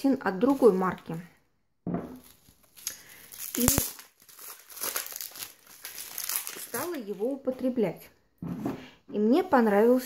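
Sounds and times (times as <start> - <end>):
packaging crinkling: 2.2 - 7.3.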